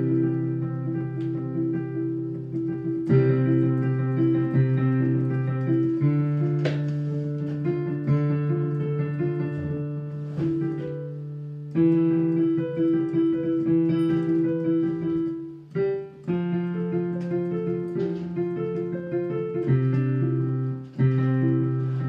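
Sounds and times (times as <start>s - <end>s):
digital piano arpeggios: 0.0s - 22.0s.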